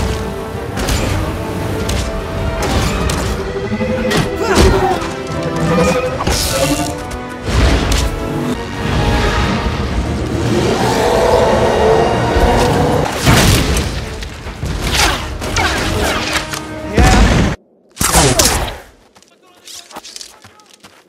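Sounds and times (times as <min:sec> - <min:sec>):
dramatic orchestral score: 0:00.0 - 0:18.8.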